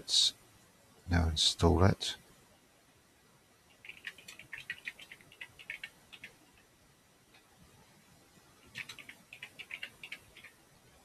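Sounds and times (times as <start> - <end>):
computer keyboard keystrokes: 3.8 - 6.4, 8.7 - 10.6.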